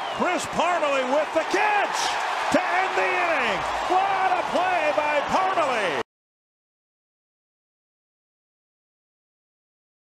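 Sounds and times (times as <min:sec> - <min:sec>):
crowd noise: 0:00.0 - 0:06.0.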